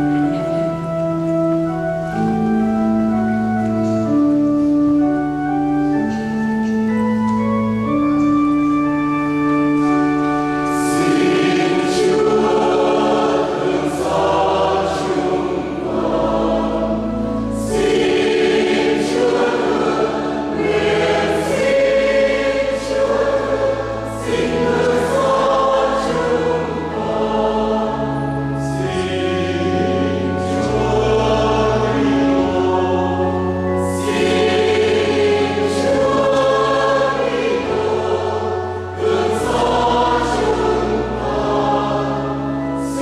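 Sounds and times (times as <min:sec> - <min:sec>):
choir singing a hymn: 0:00.0 - 0:43.0
sustained organ chords: 0:00.0 - 0:43.0.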